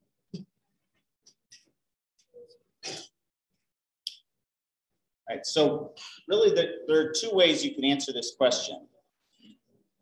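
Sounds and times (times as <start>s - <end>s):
person clearing throat: 2.8s - 3.2s.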